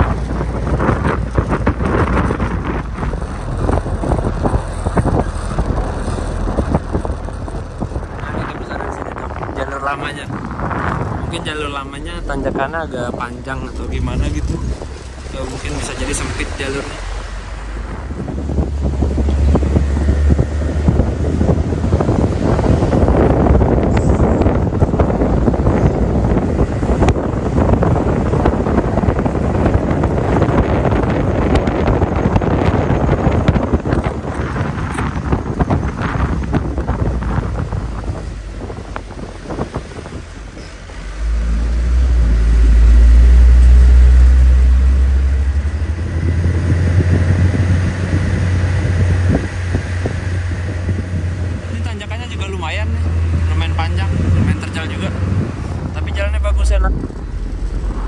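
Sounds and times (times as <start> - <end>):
diesel engine drone: 0.0 - 58.0
wind buffeting microphone: 0.0 - 58.0.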